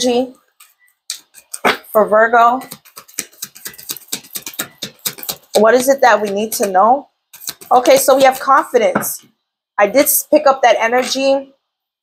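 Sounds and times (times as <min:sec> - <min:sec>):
cards being shuffled: 0:02.7 - 0:05.5.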